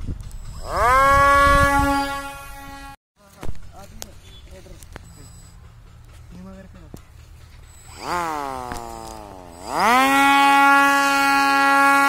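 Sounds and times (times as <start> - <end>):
electric motor propeller whine: 0.0 - 3.0, 7.2 - 12.0.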